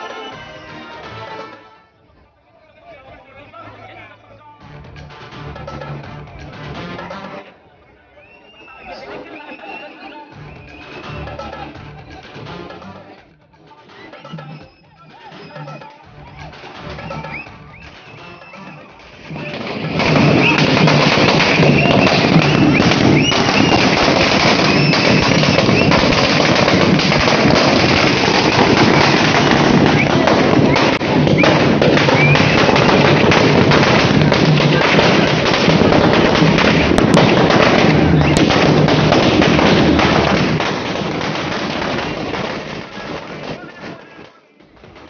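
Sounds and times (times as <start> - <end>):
firecrackers crackling: 8.2 - 45.0.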